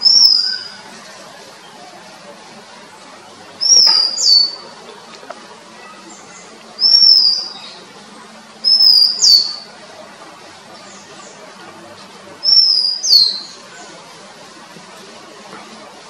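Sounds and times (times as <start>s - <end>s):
bird singing whistled notes: 0.0s - 0.8s, 3.6s - 4.7s, 6.3s - 7.8s, 8.6s - 9.7s, 12.4s - 13.6s.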